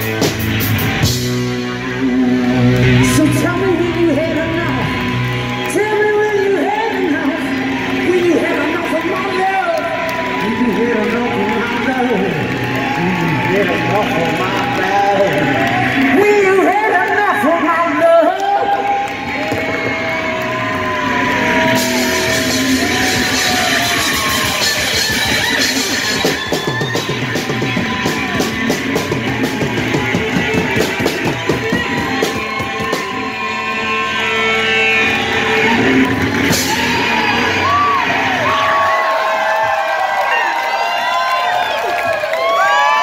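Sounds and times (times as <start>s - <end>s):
electric guitar through amplifier: 0.0s - 39.0s
rock band playing: 0.0s - 41.4s
crowd whooping and shouting: 0.0s - 43.0s.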